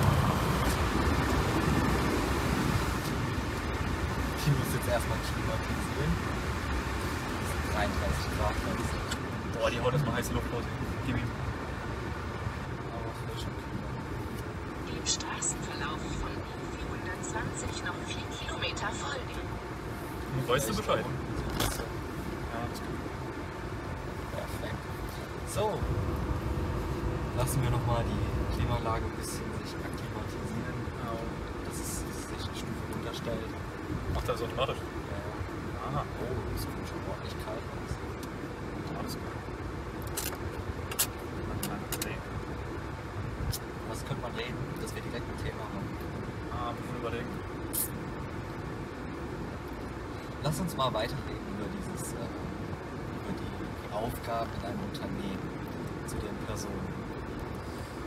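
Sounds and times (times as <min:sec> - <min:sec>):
car road and engine noise: 0:00.0 - 0:58.0.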